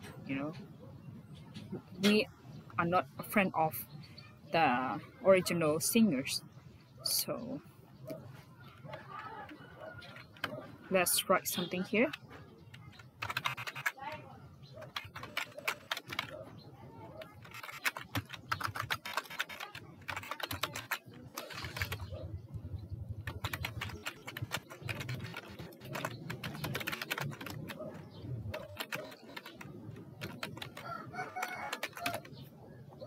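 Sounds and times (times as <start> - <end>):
computer keyboard typing: 8.3 - 22.5, 23.1 - 32.5.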